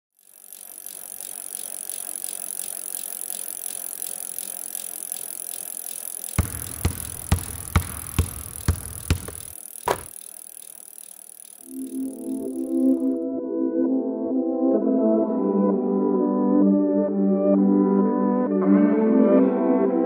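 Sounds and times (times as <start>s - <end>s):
bike tyre and wind rush: 0.4s - 11.6s.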